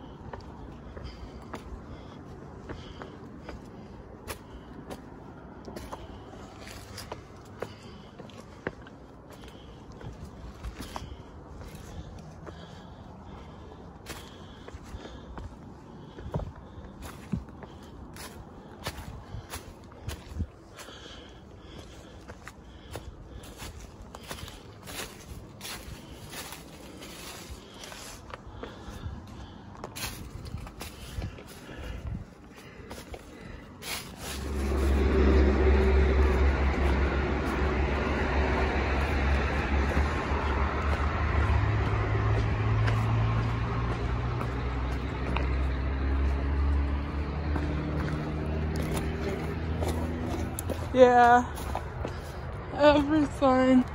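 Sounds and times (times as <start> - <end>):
footsteps crunching on rocky trail: 0.0 - 53.9
rumble of passing traffic: 0.0 - 53.9.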